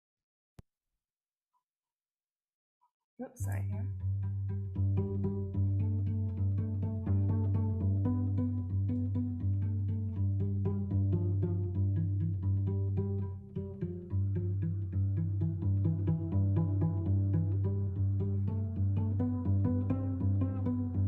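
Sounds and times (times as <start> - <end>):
cello quick notes: 3.4 - 21.0.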